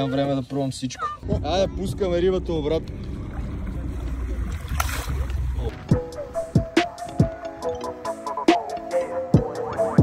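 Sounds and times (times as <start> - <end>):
steady low rumble: 1.2 - 6.8
fish splashing: 3.0 - 5.7.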